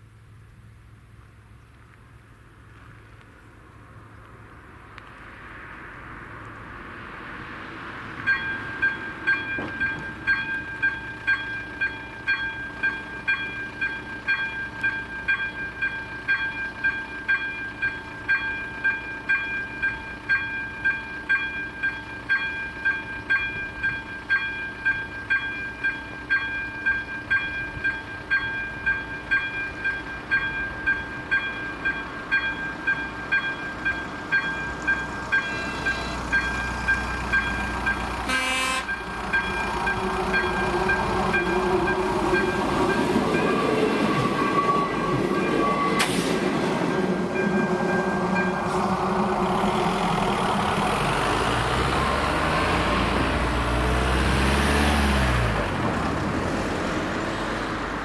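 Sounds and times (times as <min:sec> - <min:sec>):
train rumble: 0:00.0 - 0:58.0
level crossing warning bell: 0:08.2 - 0:49.8.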